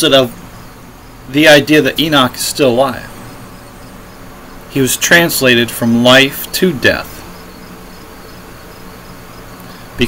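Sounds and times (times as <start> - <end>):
background hiss: 0.0 - 10.0
low hum: 0.0 - 10.0
faint high chirp: 3.1 - 5.0.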